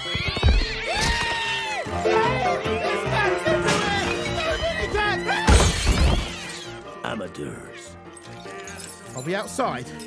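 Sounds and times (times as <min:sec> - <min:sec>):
window glass shattering: 0:05.4 - 0:06.8.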